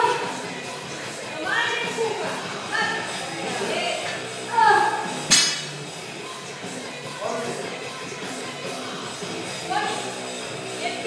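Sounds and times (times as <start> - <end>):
background music: 0.0 - 11.0
barbell clanking on floor: 5.3 - 5.8.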